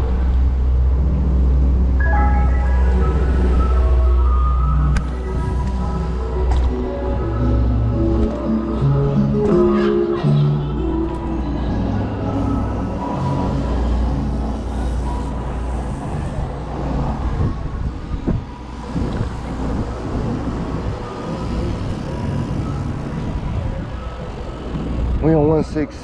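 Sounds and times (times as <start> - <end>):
road traffic: 0.0 - 26.0
wind rushing over microphone: 11.6 - 26.0.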